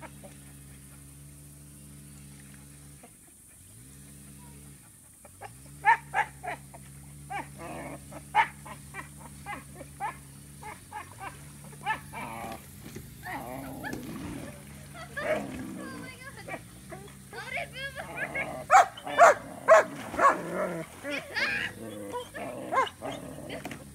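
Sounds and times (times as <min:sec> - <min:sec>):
jet ski engine idling: 0:00.0 - 0:23.9
dog barking and yelping: 0:05.2 - 0:12.6, 0:18.0 - 0:23.3.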